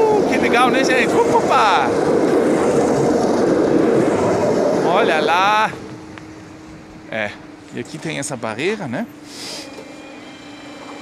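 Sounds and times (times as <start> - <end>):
electric train passing: 0.0 - 11.0.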